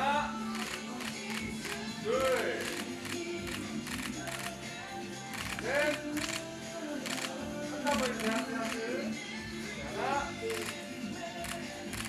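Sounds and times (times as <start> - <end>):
background music: 0.0 - 12.0
camera shutters clicking: 0.5 - 4.6, 5.2 - 9.0, 10.5 - 12.0.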